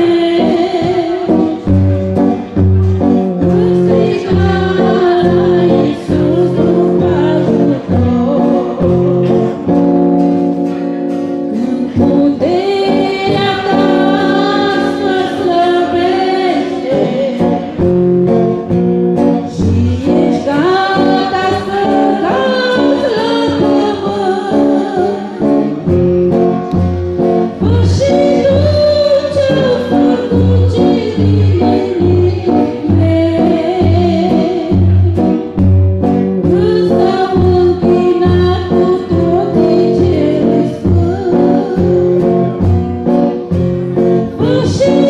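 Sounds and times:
woman singing: 0.0s - 2.0s, 3.3s - 9.8s, 11.5s - 18.0s, 19.4s - 25.8s, 27.4s - 35.5s, 36.4s - 43.1s, 44.1s - 45.0s
strummed acoustic guitar: 0.0s - 45.0s.

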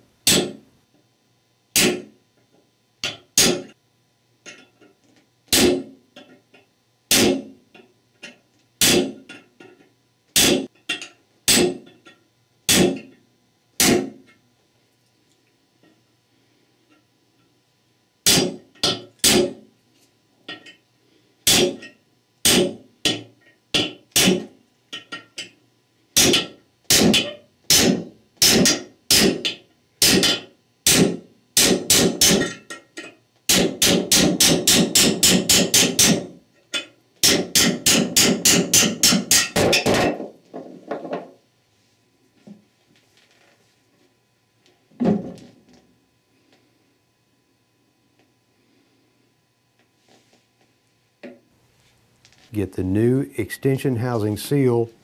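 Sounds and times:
hammer striking steel punch: 0.2s - 0.6s, 1.8s - 2.1s, 3.0s - 3.7s, 5.5s - 5.9s, 7.1s - 7.5s, 8.8s - 9.4s, 10.4s - 11.9s, 12.7s - 13.1s, 13.8s - 14.2s, 18.2s - 19.6s, 21.5s - 24.5s, 26.2s - 32.6s, 33.5s - 36.3s, 37.2s - 40.2s.

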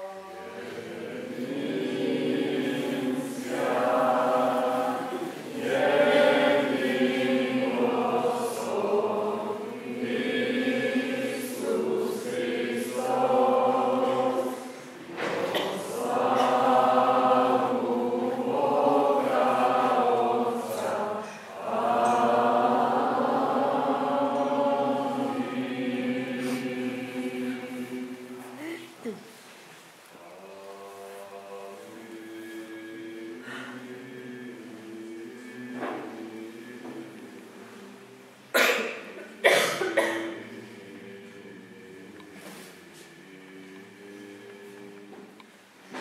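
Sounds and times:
voices singing liturgical chant: 0.0s - 29.2s, 30.2s - 46.0s.

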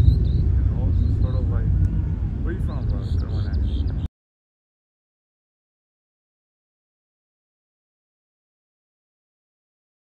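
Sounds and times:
steady low rumble: 0.0s - 4.1s.

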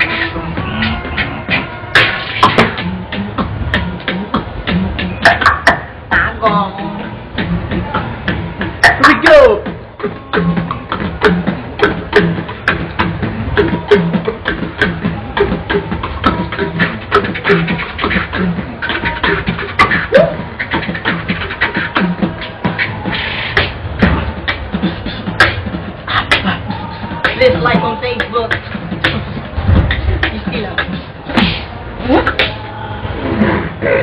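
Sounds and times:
person beatboxing: 0.0s - 34.0s.

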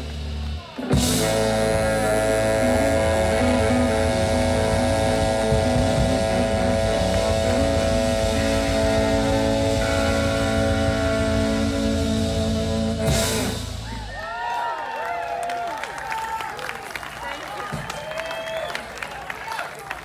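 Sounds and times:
electric guitar: 0.0s - 14.1s
electric bass: 0.0s - 14.2s
drums: 0.0s - 14.7s, 16.8s - 19.0s
saxophone: 0.6s - 14.1s
higher sustained note: 0.9s - 13.8s.

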